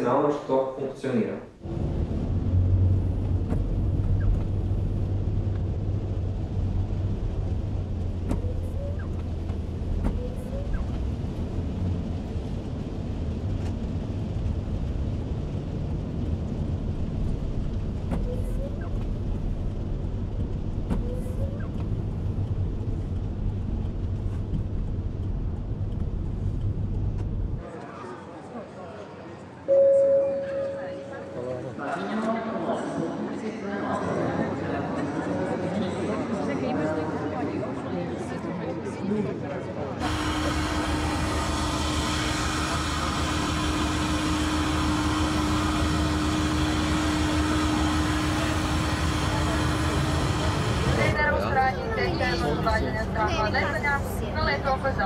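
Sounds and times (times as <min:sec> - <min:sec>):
car engine and tyres rumbling: 0:01.6 - 0:27.8, 0:40.0 - 0:55.0
rain hiss: 0:01.7 - 0:25.4, 0:40.0 - 0:51.9
voices in a hall: 0:27.6 - 0:43.0, 0:47.0 - 0:55.0
short loud beep: 0:29.7 - 0:31.1.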